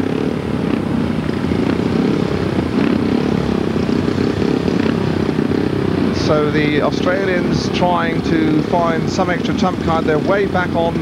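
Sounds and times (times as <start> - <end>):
motorcycle engines revving: 0.0 - 11.0.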